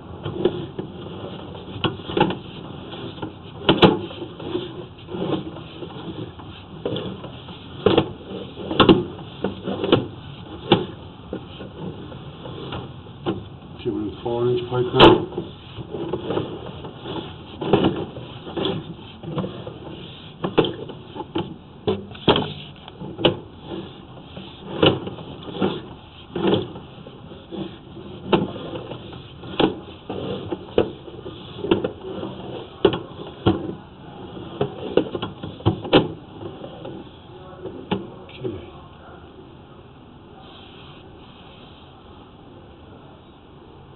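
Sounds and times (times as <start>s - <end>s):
cable knocking and rattling: 0.2s - 13.5s, 14.4s - 33.8s.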